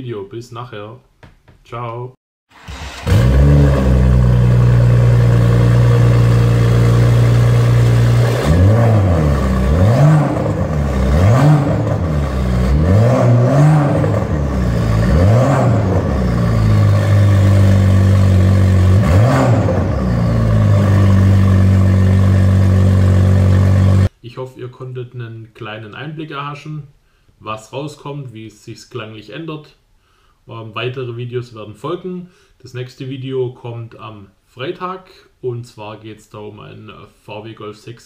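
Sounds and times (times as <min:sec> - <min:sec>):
car exhaust idling and revving: 0:03.0 - 0:24.1.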